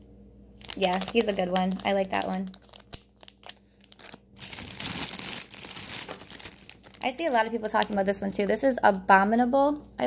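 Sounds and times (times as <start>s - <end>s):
plastic bags crinkling: 0.6s - 8.4s.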